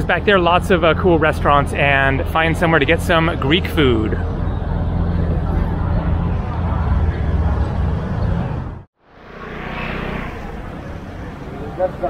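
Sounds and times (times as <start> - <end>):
heavy low rumble: 0.0 - 11.4
city street ambience: 0.0 - 12.0.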